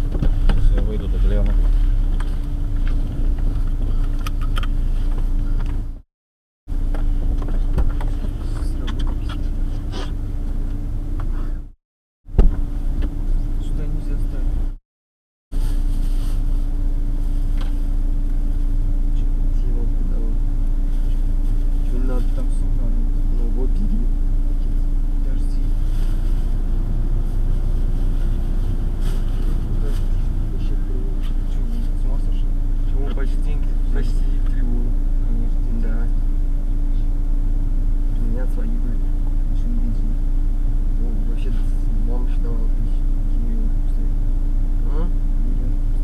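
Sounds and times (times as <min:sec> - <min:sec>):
car engine idling: 0:00.0 - 0:06.0, 0:06.7 - 0:11.7, 0:15.8 - 0:46.0.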